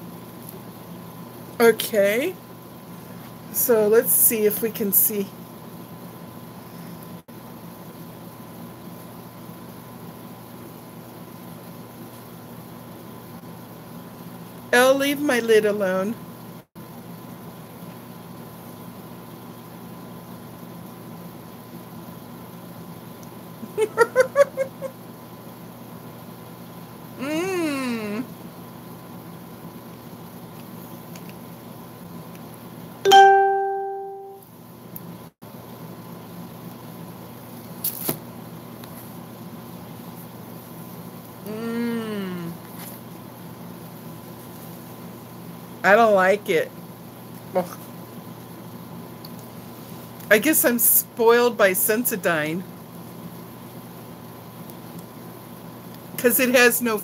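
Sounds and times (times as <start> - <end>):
muffled laugh: 23.7 - 24.9
woman humming closed-mouth: 27.2 - 28.3, 41.4 - 42.7
clear ringing tone: 33.1 - 34.4.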